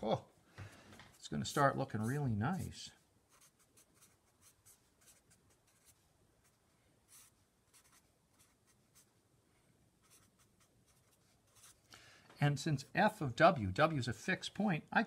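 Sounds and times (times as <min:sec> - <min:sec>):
marker writing on paper: 0:01.1 - 0:09.1, 0:10.0 - 0:11.8.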